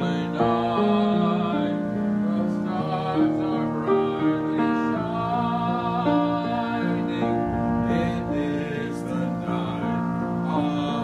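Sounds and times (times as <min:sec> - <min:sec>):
keyboard chords: 0:02.9 - 0:11.0.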